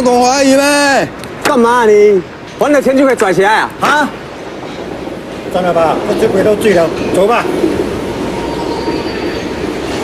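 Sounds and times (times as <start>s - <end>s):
train rumbling past: 0.0s - 10.0s.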